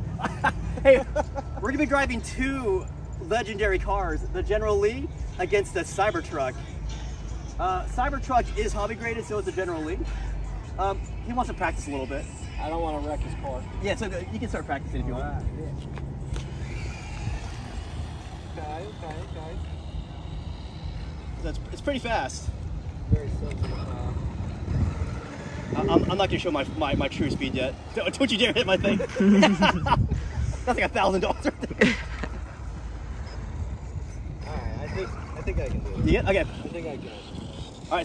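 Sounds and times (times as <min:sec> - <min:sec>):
wind rumble on microphone: 0:15.2 - 0:38.0
electric motor whine: 0:15.9 - 0:30.3, 0:31.8 - 0:38.0.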